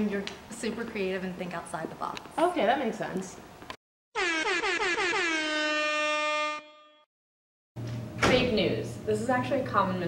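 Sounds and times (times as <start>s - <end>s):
air horn blasts: 4.2s - 7.1s.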